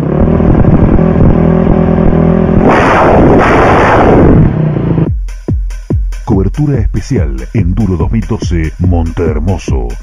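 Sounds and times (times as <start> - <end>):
motorcycle engine at high revs: 0.0 - 5.1
rush of noise: 0.0 - 5.1.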